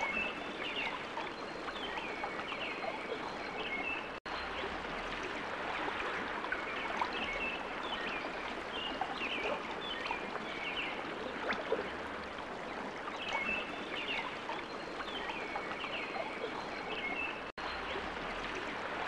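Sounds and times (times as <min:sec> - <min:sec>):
flowing water rushing: 0:00.0 - 0:19.0.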